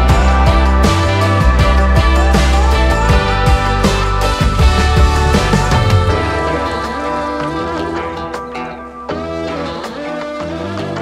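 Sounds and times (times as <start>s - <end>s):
background music with sustained notes: 0.0s - 11.0s.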